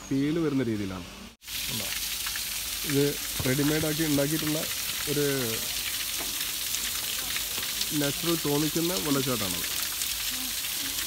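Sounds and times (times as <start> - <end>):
water splashing down rocks: 1.4 - 11.0.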